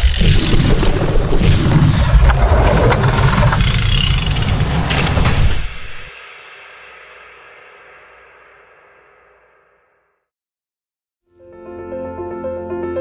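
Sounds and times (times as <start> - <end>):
sharp hit: 1.3 - 10.0.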